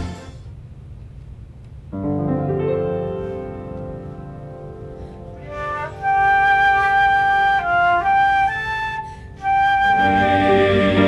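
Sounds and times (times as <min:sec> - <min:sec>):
piano chord: 0:01.9 - 0:06.3
flute playing slow melody: 0:05.4 - 0:11.0.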